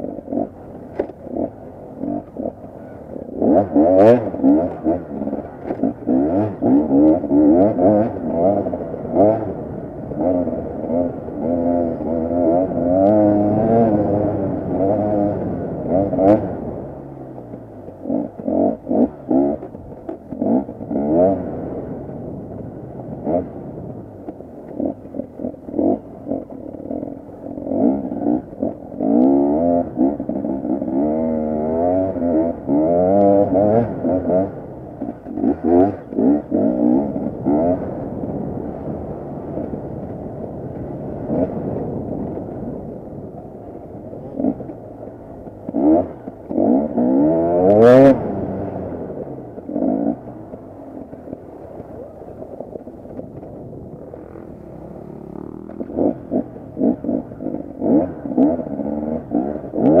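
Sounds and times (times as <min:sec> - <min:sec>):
motorcycle engine revving: 0:00.0 - 1:00.0.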